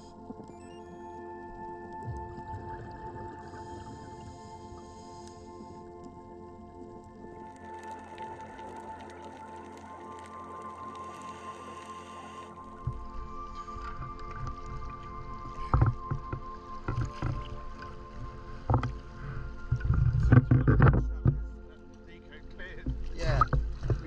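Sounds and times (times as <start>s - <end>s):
soft background music: 0.0s - 24.0s
water sloshing with low rumble: 0.0s - 24.0s
water splashes: 6.7s - 24.0s.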